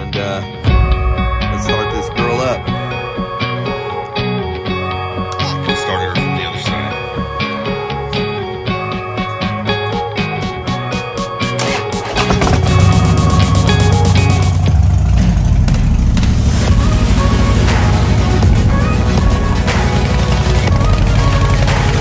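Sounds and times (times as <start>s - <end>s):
rock music: 0.0s - 22.0s
motorcycle engine idling: 11.6s - 22.0s.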